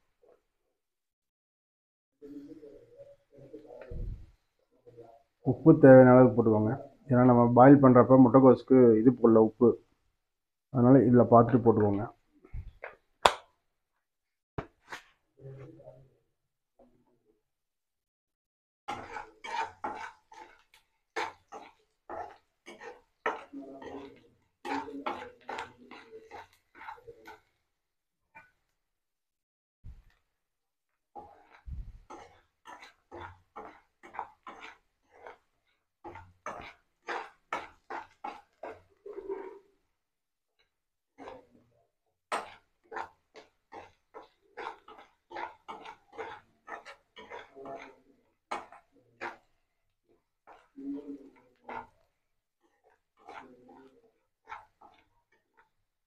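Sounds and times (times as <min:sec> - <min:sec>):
ladle scraping a pan: 0:14.8 - 0:16.0, 0:18.9 - 0:27.6, 0:31.1 - 0:39.9, 0:40.6 - 0:41.7, 0:42.3 - 0:55.8.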